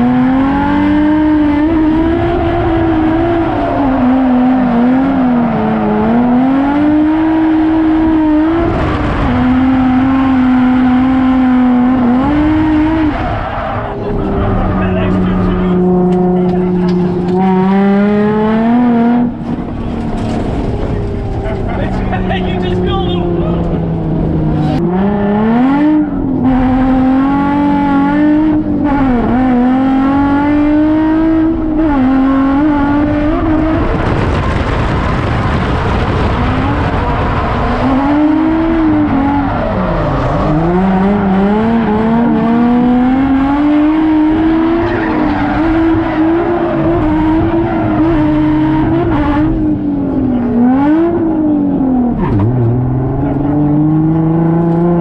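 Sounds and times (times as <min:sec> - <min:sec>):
car engine at high revs: 0:00.0 - 0:55.0.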